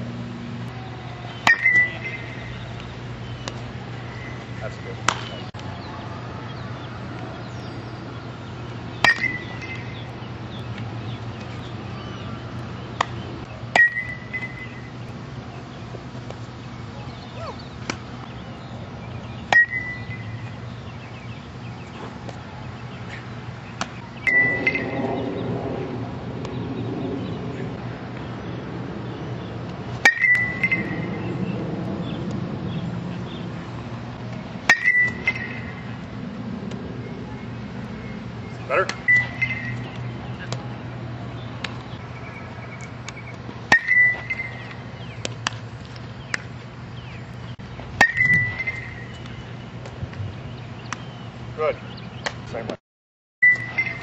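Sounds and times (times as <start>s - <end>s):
ringing ping: 1.4s - 2.6s, 9.0s - 10.0s, 13.8s - 14.9s, 19.5s - 20.4s, 24.2s - 25.2s, 30.1s - 31.2s, 34.7s - 35.9s, 39.0s - 39.9s, 43.7s - 44.6s, 48.0s - 49.1s, 53.4s - 54.0s
bat hitting baseball: 1.4s - 5.4s, 9.0s - 10.0s, 13.0s - 14.8s, 19.5s - 20.1s, 23.8s - 25.3s, 30.0s - 31.2s, 34.6s - 35.9s, 43.1s - 45.6s, 48.0s - 49.1s
bat cracking a baseball: 5.0s - 5.7s.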